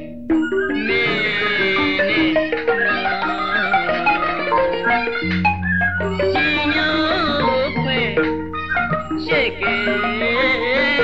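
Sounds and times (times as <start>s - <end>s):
wavering high melodic line: 0.0s - 11.0s.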